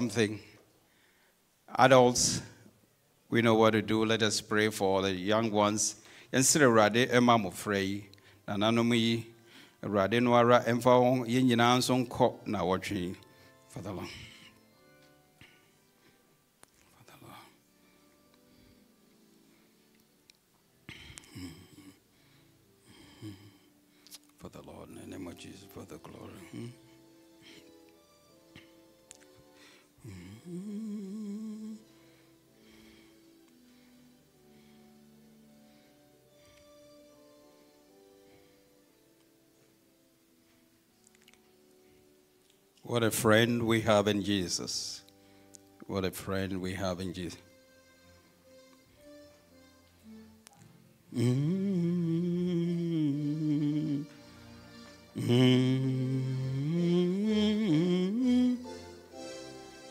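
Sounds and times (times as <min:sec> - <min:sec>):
soft instrumental music: 0:00.0 - 0:59.9
person humming: 0:20.9 - 0:22.0, 0:22.9 - 0:24.2, 0:26.3 - 0:26.9, 0:30.0 - 0:31.9, 0:51.1 - 0:54.3, 0:55.1 - 0:59.1
hymn being sung: 0:55.1 - 0:58.8.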